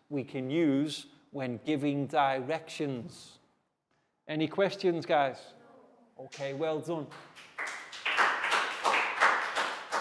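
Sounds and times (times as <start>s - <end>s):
group clapping hands: 7.1s - 10.0s.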